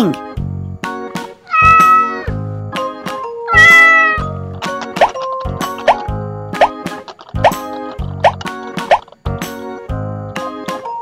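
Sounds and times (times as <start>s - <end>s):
boogie-woogie music: 1.5s - 9.0s.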